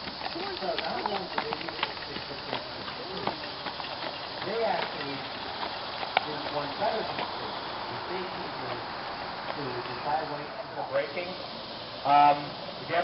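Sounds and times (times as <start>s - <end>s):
distant people talking: 0.0s - 13.0s.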